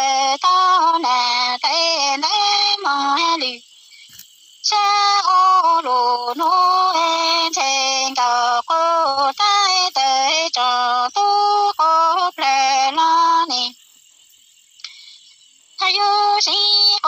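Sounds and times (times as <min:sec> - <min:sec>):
woman singing unaccompanied: 0:00.0 - 0:13.8, 0:14.8 - 0:17.0.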